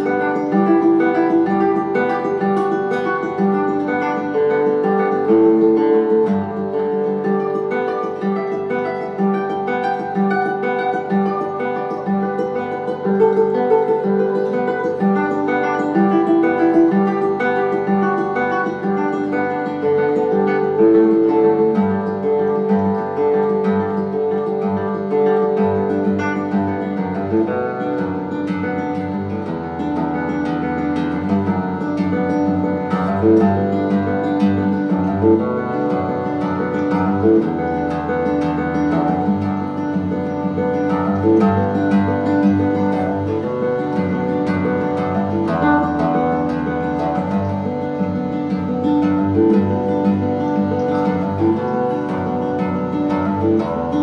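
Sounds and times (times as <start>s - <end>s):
solo guitar plucked notes: 0.0s - 54.0s.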